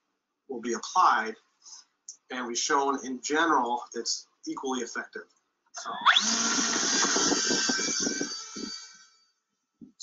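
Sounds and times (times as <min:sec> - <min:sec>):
drone motor whining: 0:05.8 - 0:09.2
wind buffeting microphone: 0:06.1 - 0:09.0.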